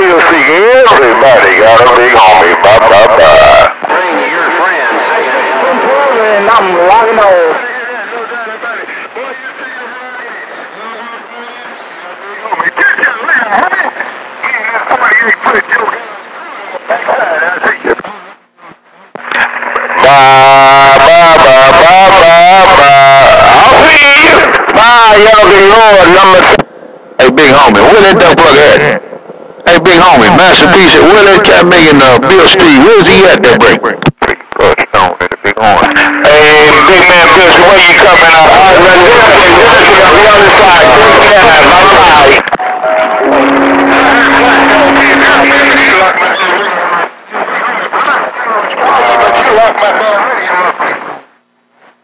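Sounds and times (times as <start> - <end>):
voices over cb radio: 0.0 - 18.4, 19.2 - 26.6, 27.2 - 29.0, 29.6 - 51.1
distorted radio transmission: 0.0 - 51.3.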